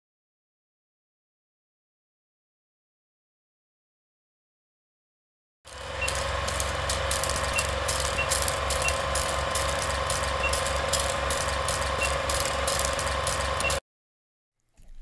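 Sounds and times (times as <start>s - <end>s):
crackling clicks: 5.7s - 13.8s
film projector running: 5.7s - 13.8s.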